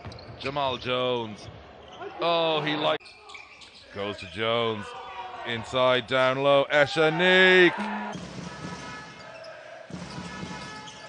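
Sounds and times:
arena background noise: 1.2 - 9.9.

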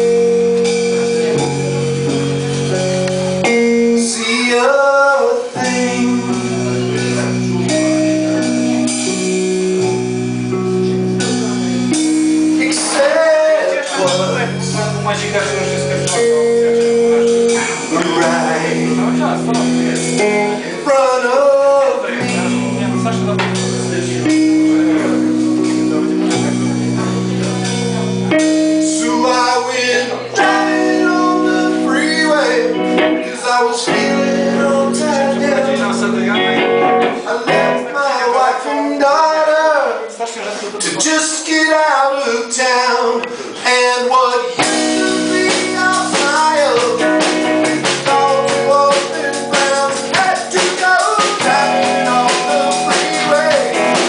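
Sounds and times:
drum kit: 0.0 - 4.7, 5.4 - 20.9, 22.0 - 38.0, 44.6 - 54.0
bass guitar: 0.0 - 39.7, 42.9 - 54.0
electric guitar: 0.0 - 54.0
man singing: 0.0 - 54.0
man singing long note: 16.7 - 22.7, 47.7 - 53.9.

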